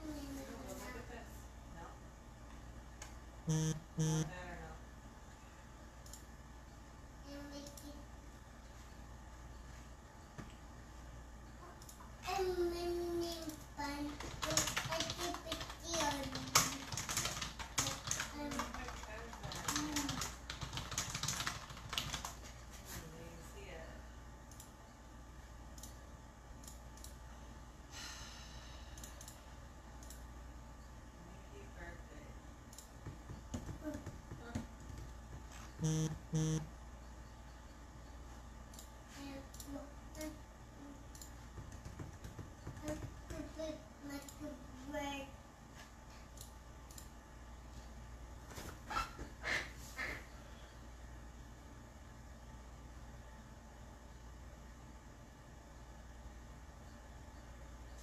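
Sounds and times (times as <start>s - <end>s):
computer keyboard typing: 3.5s - 4.3s, 14.0s - 22.4s, 34.8s - 36.6s
short low tones: 3.5s - 4.3s, 35.8s - 36.7s.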